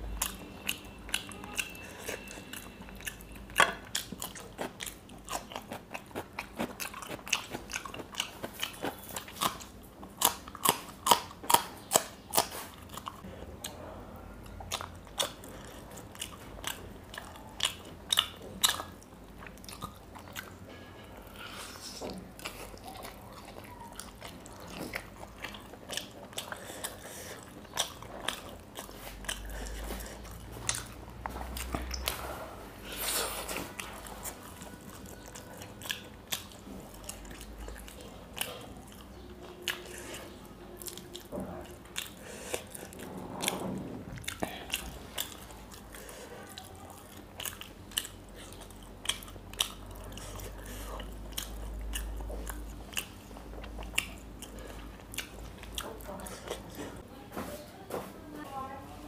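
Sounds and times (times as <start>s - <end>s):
crunching and chewing: 0.0s - 57.0s.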